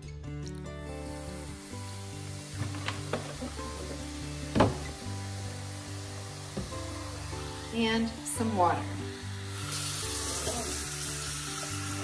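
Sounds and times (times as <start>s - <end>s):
soft background music: 0.0s - 12.0s
baking soda fizzing: 7.4s - 12.0s.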